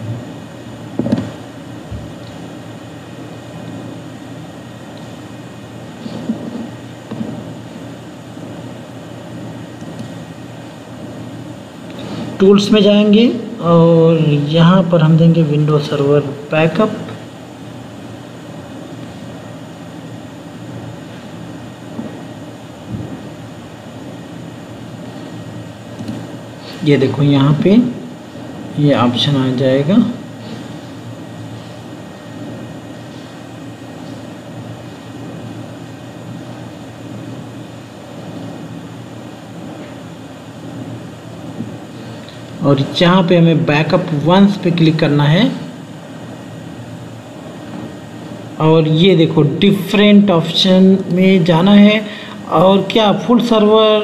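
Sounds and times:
low background hum: 0.0 - 54.0.

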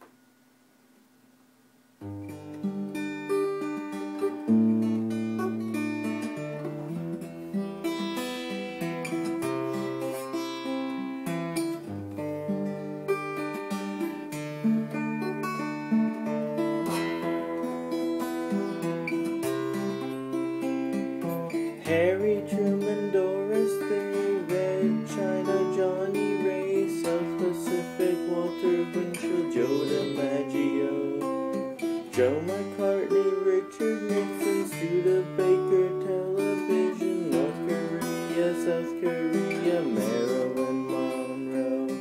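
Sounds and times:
acoustic guitar strumming chords: 2.0 - 42.0.

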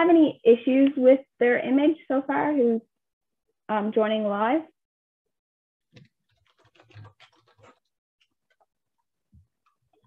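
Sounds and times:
typing on computer keyboard: 5.9 - 8.6.

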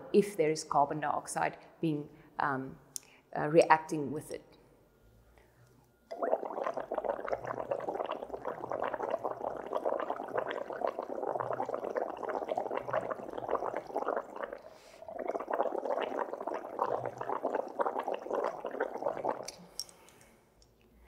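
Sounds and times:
breath bubbling through straw: 6.1 - 19.9.

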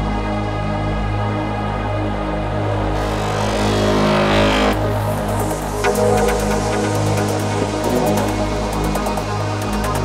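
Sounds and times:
steady bass drone: 2.3 - 10.0
rising noise sweep: 3.0 - 9.0
electronic breakbeat music: 3.0 - 10.0.

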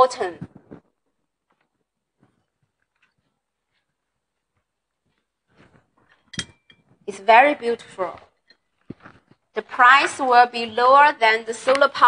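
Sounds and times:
ceramic knock ringing: 6.3 - 6.9.

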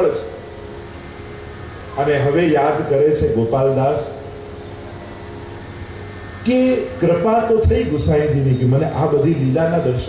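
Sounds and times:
faint steady tones: 0.0 - 10.0
hall hum and hiss: 0.0 - 10.0.

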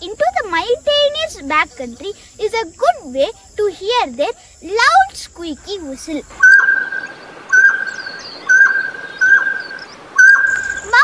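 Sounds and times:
small birds chirping: 0.0 - 11.0
quail whistled call: 6.4 - 11.0.

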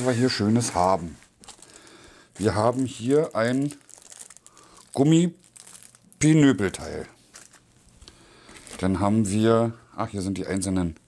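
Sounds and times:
plastic bag crinkling: 0.0 - 9.4.

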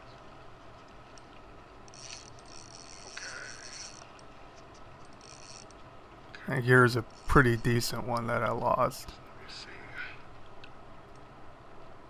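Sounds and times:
fishing reel drag buzzing: 1.9 - 4.3, 5.0 - 5.8, 7.0 - 7.8.

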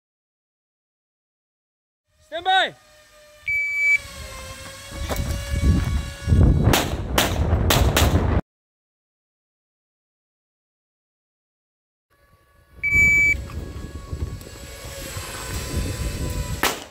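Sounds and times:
shot timer beep: 3.5 - 4.0, 12.8 - 13.4
handgun shots: 16.6 - 16.9.

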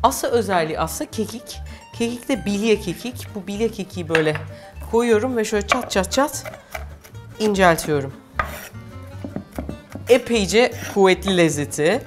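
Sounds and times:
background music with low beat: 0.5 - 12.0
knife chopping on wooden board: 8.4 - 10.1.

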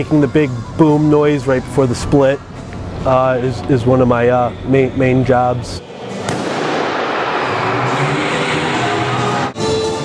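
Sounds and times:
loud rushing noise: 5.8 - 9.6
bang: 6.1 - 8.9.

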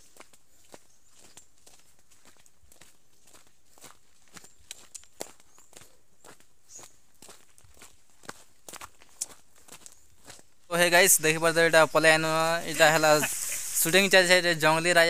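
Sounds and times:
footsteps crunching on leaves: 0.0 - 15.0.

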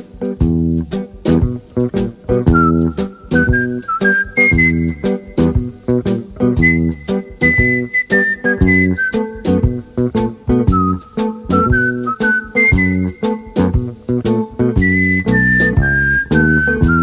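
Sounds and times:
plucked guitar and bass: 0.0 - 17.0
whistled melody: 2.4 - 5.7, 6.4 - 13.8, 14.6 - 17.0.

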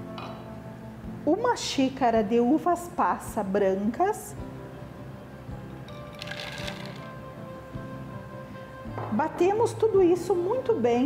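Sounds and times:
soft background music: 0.0 - 11.0
raisins rattling into blender jar: 6.1 - 7.1.

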